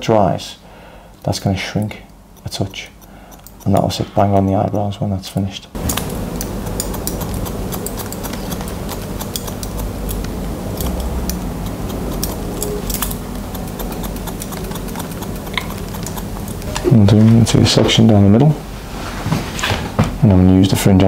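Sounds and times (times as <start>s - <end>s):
steady low hum: 0.0s - 21.0s
scissors snipping hair: 1.7s - 4.0s, 5.8s - 16.9s.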